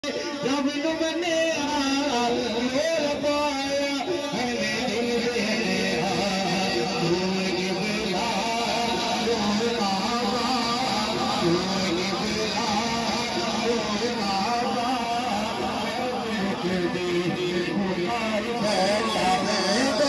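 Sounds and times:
man singing into a microphone: 0:00.0 - 0:20.0.

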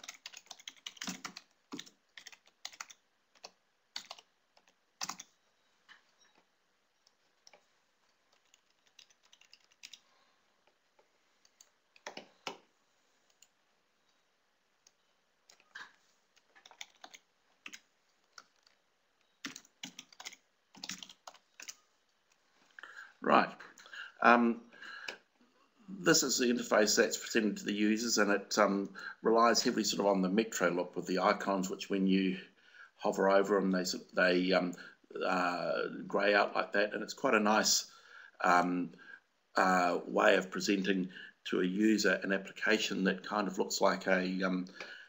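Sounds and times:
computer keyboard typing: 0:00.0 - 0:05.4, 0:07.0 - 0:10.0, 0:11.4 - 0:12.6, 0:14.8 - 0:21.8.

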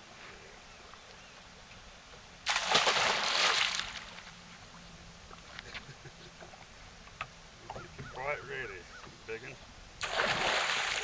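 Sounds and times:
fish splashing at water surface: 0:02.5 - 0:04.2, 0:10.0 - 0:11.0.

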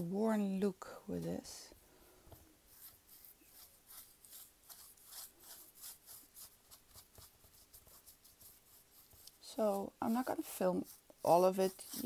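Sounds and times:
paintbrush scratching on wood: 0:02.7 - 0:12.0.

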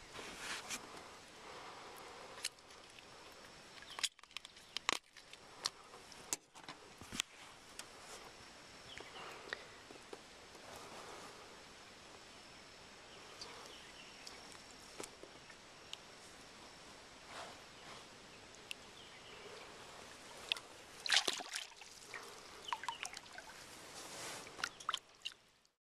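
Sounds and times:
water drips: 0:20.4 - 0:23.6, 0:24.6 - 0:25.8
water splashing and sloshing: 0:20.5 - 0:25.5.

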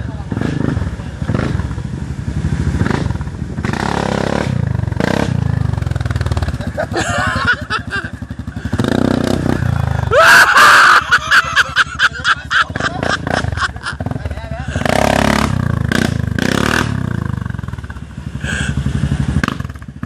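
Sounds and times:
atv engine running: 0:00.0 - 0:20.0
voices calling out: 0:09.5 - 0:14.9.

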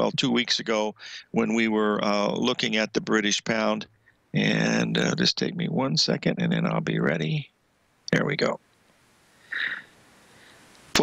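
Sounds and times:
person speaking: 0:00.0 - 0:07.5, 0:08.1 - 0:08.6, 0:09.5 - 0:09.8
breath into microphone: 0:01.0 - 0:01.3, 0:09.3 - 0:10.8.

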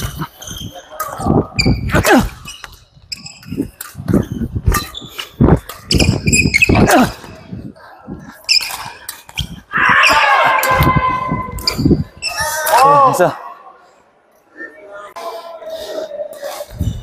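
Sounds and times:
shoes squeaking on court: 0:00.0 - 0:07.4, 0:08.4 - 0:10.2, 0:11.5 - 0:12.6
players' voices: 0:00.0 - 0:17.0.

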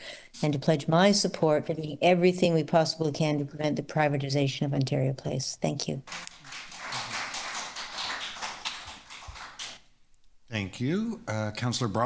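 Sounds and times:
audience applauding: 0:06.1 - 0:09.8.

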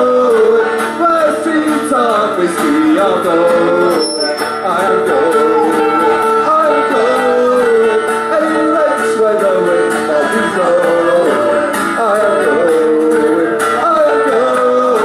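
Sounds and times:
mandolin: 0:00.0 - 0:15.0
strummed acoustic guitar: 0:00.0 - 0:15.0
melodica melody: 0:03.8 - 0:11.8.

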